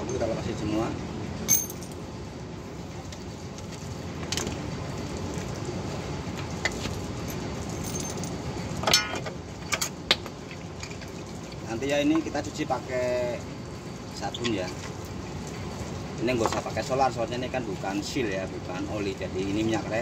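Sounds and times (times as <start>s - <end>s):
metallic clinks and clatter: 1.5s - 2.0s, 7.2s - 9.2s.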